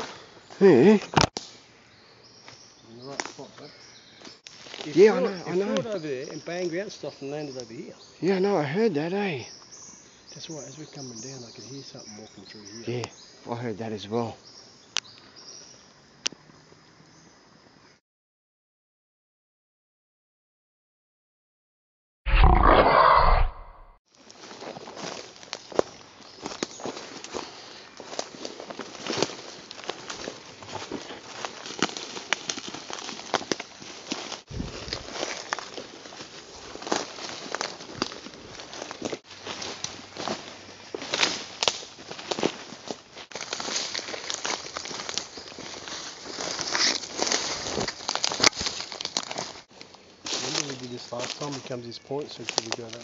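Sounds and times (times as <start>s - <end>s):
twigs snapping and rustling: 1.0s - 1.6s, 2.4s - 6.4s, 24.1s - 53.0s
footsteps crunching through dry leaves: 2.5s - 7.9s, 24.1s - 53.0s.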